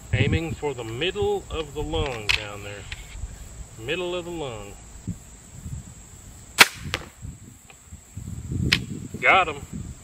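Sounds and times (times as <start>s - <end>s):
crossbow firing snap: 6.6s - 7.2s, 8.7s - 8.9s.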